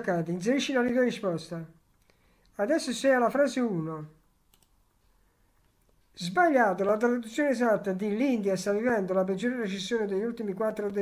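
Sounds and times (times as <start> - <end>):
computer mouse clicks: 4.4 - 6.1.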